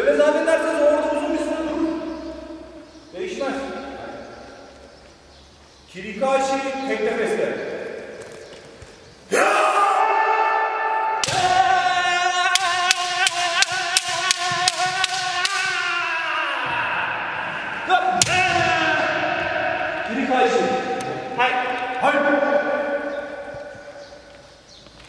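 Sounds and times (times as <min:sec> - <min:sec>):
long shouts: 0:09.3 - 0:23.4.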